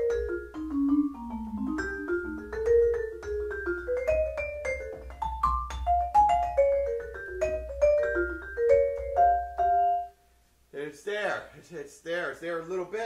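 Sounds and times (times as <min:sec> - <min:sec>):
vibraphone melody: 0:00.0 - 0:10.2.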